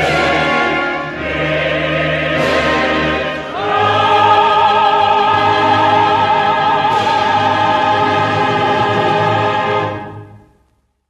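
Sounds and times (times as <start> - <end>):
mixed choir holding a chord: 0.0 - 10.5.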